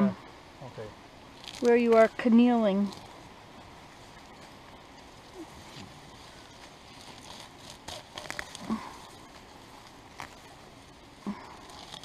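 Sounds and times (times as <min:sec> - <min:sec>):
grass pulled from wet soil: 0:01.4 - 0:02.1, 0:02.7 - 0:12.0.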